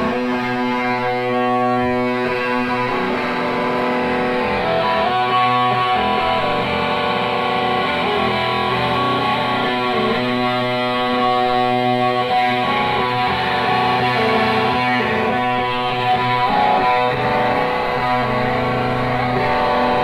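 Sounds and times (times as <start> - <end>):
distorted electric guitars: 0.0 - 20.0.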